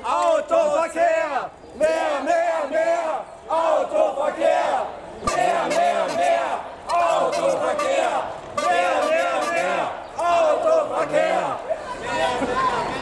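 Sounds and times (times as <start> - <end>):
crowd chanting: 1.8 - 13.0.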